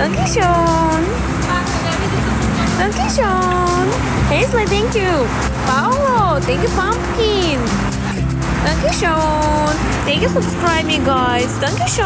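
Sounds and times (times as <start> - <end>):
engine humming nearby: 0.0 - 12.0
street traffic: 0.0 - 12.0.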